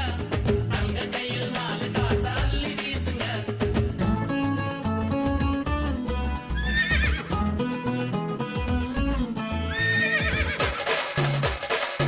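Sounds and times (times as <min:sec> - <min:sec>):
film music with drum beat: 0:00.0 - 0:06.0, 0:06.6 - 0:12.0
horse whinnying: 0:06.6 - 0:07.3, 0:09.7 - 0:11.0.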